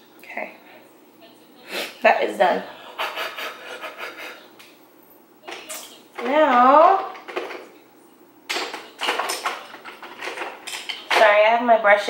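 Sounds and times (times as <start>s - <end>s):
rustling of makeup brushes: 8.6s - 11.2s.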